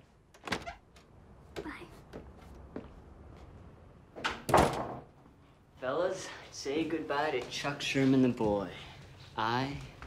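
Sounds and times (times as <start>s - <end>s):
door thudding shut: 4.2s - 5.1s.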